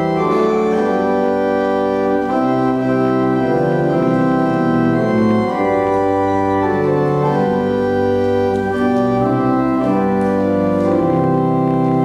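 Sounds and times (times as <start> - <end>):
church organ playing a hymn: 0.0 - 12.0.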